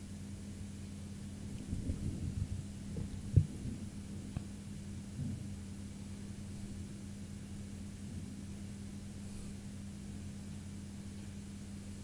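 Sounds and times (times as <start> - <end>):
low electrical hum: 0.0 - 12.0
dull low thump: 1.7 - 4.5, 5.1 - 5.5.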